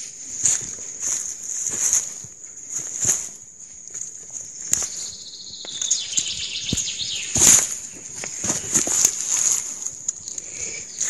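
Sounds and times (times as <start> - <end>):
footsteps crunching dry leaves: 0.0 - 11.0.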